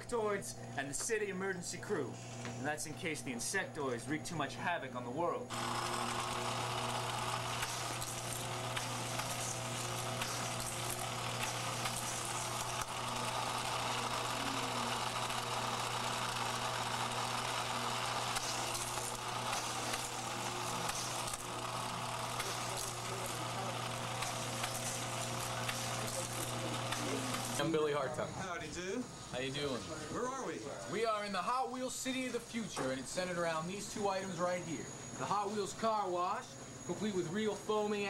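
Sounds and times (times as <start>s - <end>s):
electric motor whir: 1.8s - 4.4s, 5.2s - 29.9s.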